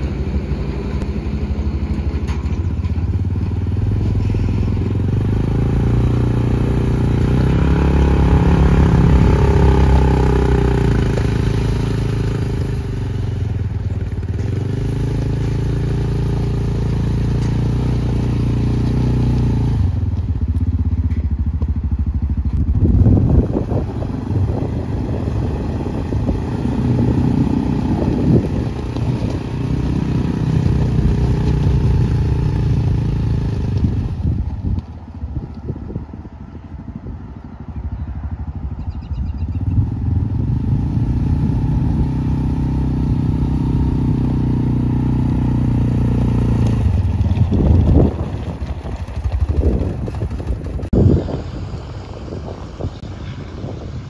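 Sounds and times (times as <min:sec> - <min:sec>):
utility vehicle engine revving: 0:00.0 - 0:36.2, 0:37.0 - 0:54.0
tyres crunching on gravel: 0:25.9 - 0:32.3, 0:46.1 - 0:51.2.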